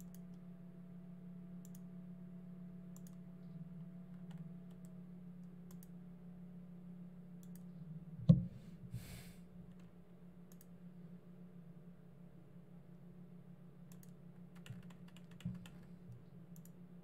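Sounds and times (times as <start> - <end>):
steady low hum: 0.0 - 17.0
faint computer input clicks: 1.6 - 1.9, 2.9 - 3.2, 4.2 - 6.0, 7.4 - 7.7, 10.5 - 10.7, 13.9 - 15.9, 16.6 - 16.8.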